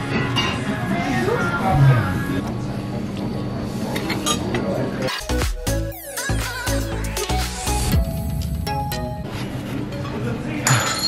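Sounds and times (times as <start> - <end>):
background music: 5.1 - 9.9
cutlery clinking against plates: 9.9 - 11.0.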